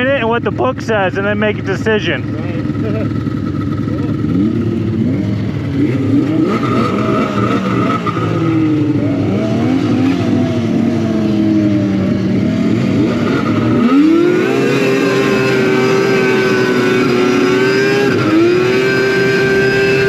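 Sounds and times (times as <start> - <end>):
snowmobile engine revving: 0.0 - 20.0.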